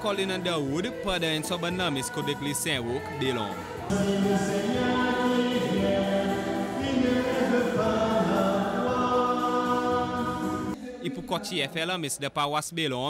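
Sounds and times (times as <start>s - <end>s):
church choir singing a hymn: 3.3s - 10.8s.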